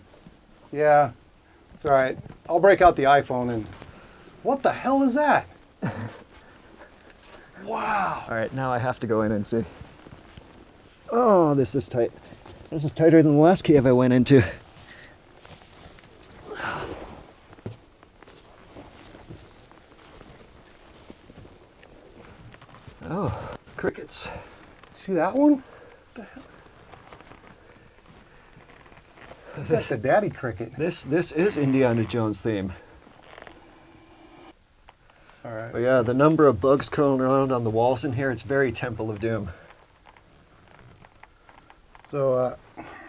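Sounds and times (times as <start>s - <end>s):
clothing rustling: 5.5s - 33.9s, 38.4s - 43.0s
boots and knees shuffling on dirt: 13.8s - 25.0s.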